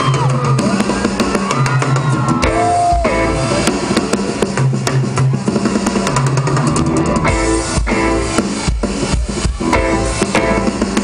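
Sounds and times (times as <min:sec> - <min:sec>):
bass notes: 0:00.0 - 0:11.0
drum kit: 0:00.0 - 0:11.0
keyboards: 0:00.0 - 0:11.0.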